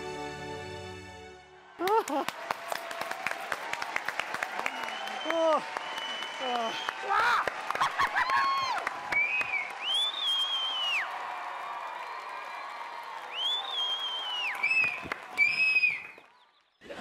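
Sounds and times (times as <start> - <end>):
audience applauding and cheering: 1.3 - 17.0
long rising whistles: 9.2 - 11.1, 13.3 - 16.2.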